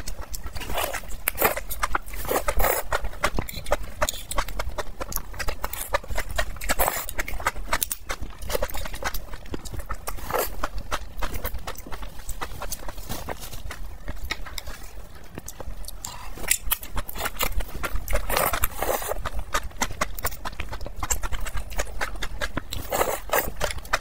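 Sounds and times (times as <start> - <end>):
wet chewing clicks and smacks: 0.0 - 12.9, 13.6 - 24.0.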